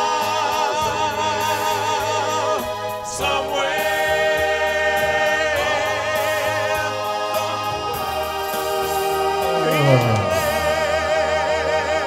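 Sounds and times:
men singing in close harmony: 0.0 - 12.0.

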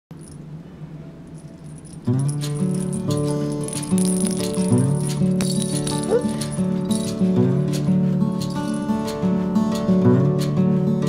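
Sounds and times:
small bell jingling: 0.1 - 0.5, 1.3 - 9.2
low steady hum: 0.1 - 9.0.

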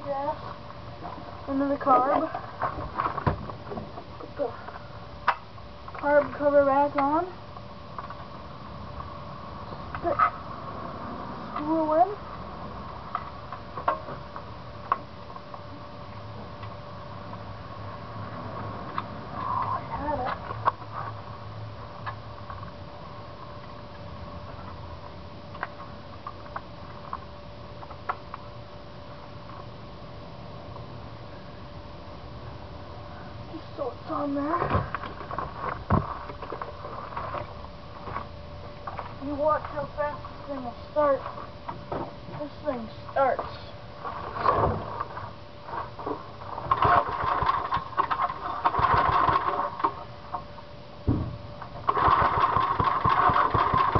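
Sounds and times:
faint steady hum: 0.0 - 53.9
outdoor background noise: 0.0 - 53.9.

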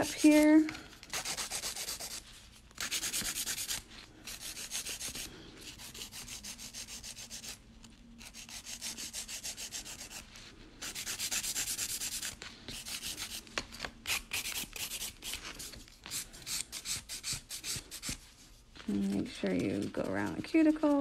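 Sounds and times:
nail file rasping on fingernails: 1.1 - 2.2, 2.8 - 7.6, 8.2 - 10.2, 10.8 - 13.4, 14.1 - 18.2.

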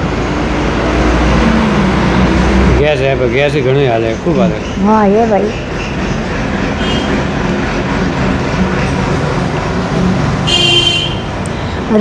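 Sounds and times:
vehicle running noise from inside: 0.0 - 12.0.

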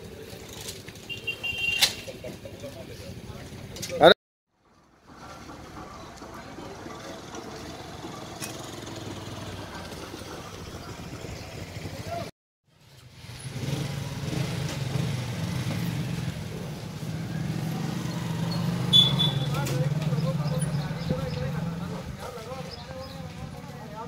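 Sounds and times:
traffic passing: 0.0 - 24.0
motorcycles passing: 4.9 - 24.0.

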